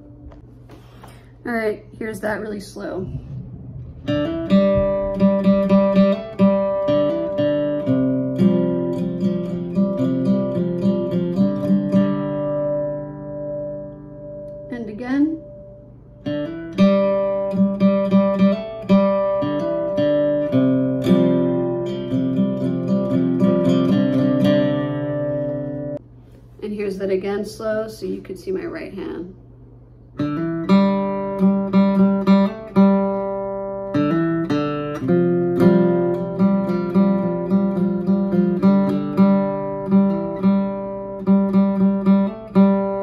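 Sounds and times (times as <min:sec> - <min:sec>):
acoustic guitar riff: 0:03.0 - 0:26.0, 0:30.2 - 0:43.0.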